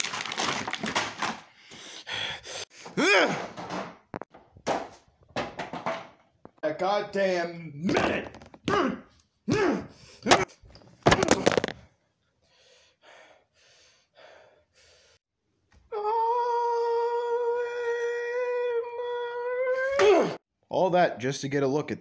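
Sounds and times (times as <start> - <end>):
man grunting: 3.0 - 3.4, 8.6 - 10.4, 19.8 - 20.4
man wailing: 3.0 - 3.4, 15.9 - 20.4.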